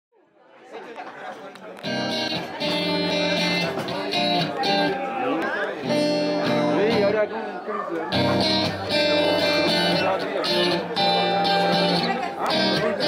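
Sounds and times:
acoustic guitar playing: 0:01.8 - 0:07.3, 0:08.1 - 0:13.0.

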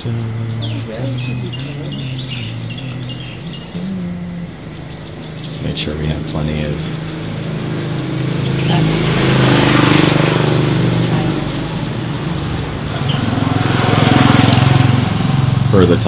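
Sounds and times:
vehicle engines passing: 0:00.0 - 0:16.0.

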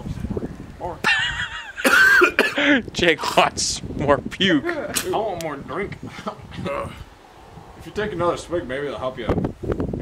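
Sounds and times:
man coughing and hacking: 0:01.8 - 0:02.8.

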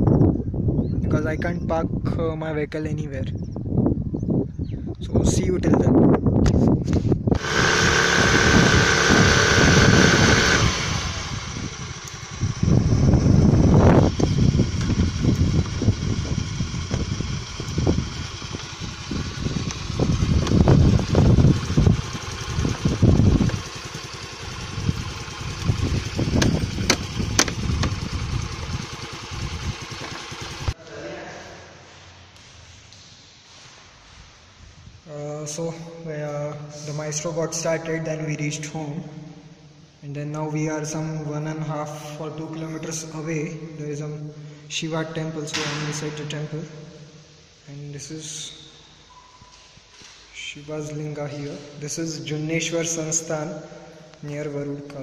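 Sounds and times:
people talking: 0:01.0 - 0:03.3, 0:30.8 - 0:31.6, 0:35.1 - 0:39.0, 0:47.7 - 0:48.6, 0:50.4 - 0:53.5, 0:54.2 - 0:55.0
scooter engine revving: 0:07.3 - 0:30.8.

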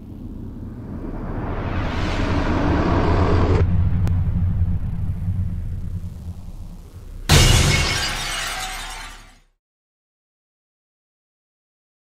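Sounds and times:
whoosh: 0:00.0 - 0:07.3
low rumble: 0:00.0 - 0:07.4
loud crash: 0:05.8 - 0:09.4.

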